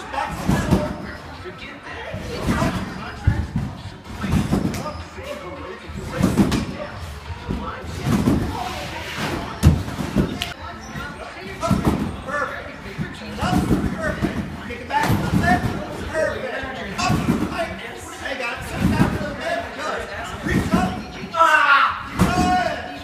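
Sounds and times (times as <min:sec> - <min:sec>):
voices talking: 0:00.0 - 0:23.0
thuds on trampoline: 0:00.3 - 0:01.0, 0:02.2 - 0:04.9, 0:06.1 - 0:06.8, 0:11.6 - 0:12.2, 0:13.1 - 0:15.9, 0:18.7 - 0:19.4, 0:22.2 - 0:22.7.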